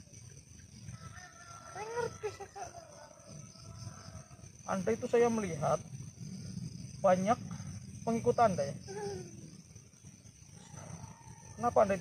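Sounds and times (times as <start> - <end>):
night insects droning: 0.0 - 12.0.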